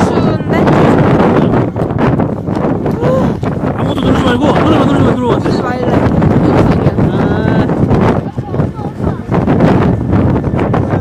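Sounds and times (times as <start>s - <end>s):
wind blowing across microphone: 0.0s - 11.0s.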